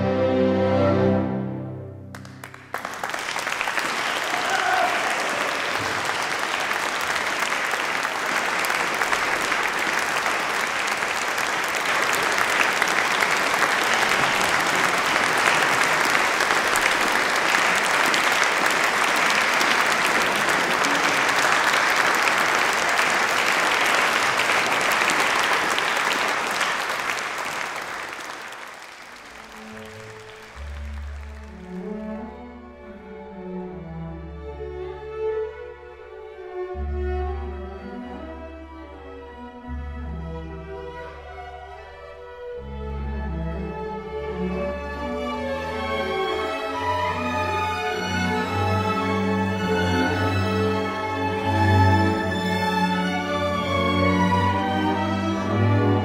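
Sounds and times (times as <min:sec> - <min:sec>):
audience applauding: 0:02.1 - 0:32.0, 0:45.8 - 0:56.0.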